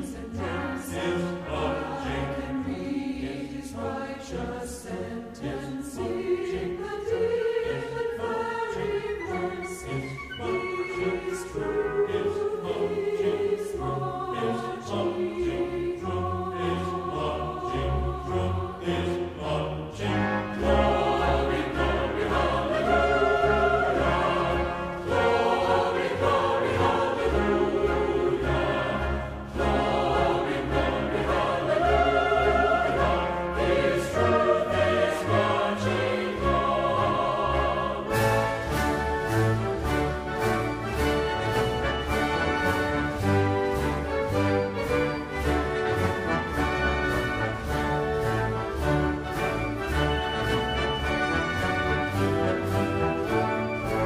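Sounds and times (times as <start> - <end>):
choir singing: 0.0 - 54.0
concert band woodwinds and brass: 0.0 - 54.0.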